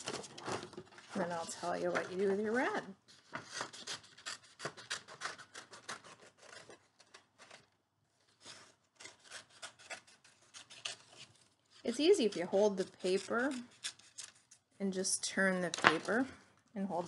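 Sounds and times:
paper rustling: 0:00.0 - 0:02.4, 0:03.1 - 0:14.6
scissors snipping paper: 0:03.5 - 0:07.2, 0:09.0 - 0:14.6.

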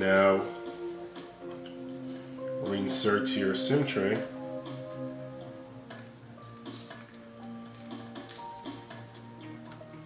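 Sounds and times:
instrumental music: 0:00.0 - 0:10.0.

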